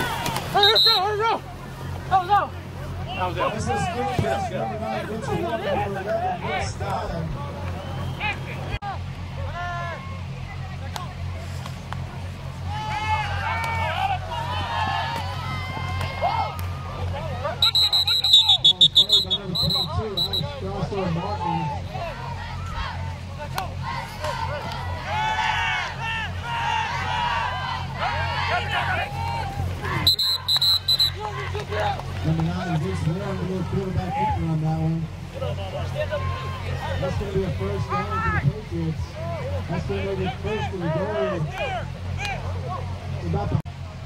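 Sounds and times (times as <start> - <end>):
people shouting: 0.0 - 1.4, 12.6 - 34.4, 35.5 - 38.4
steady low hum: 0.0 - 44.0
referee's whistle blasts: 0.5 - 1.2, 17.6 - 20.6, 30.0 - 31.2.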